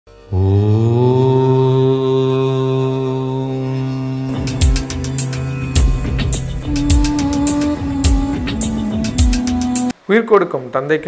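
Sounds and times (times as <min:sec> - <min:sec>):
man chanting a drone: 0:00.3 - 0:08.8.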